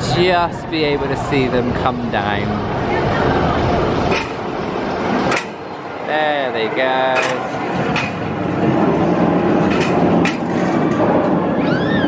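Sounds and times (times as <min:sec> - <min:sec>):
roller coaster train rumbling: 0:00.0 - 0:12.0
roller coaster track clacks: 0:06.2 - 0:12.0.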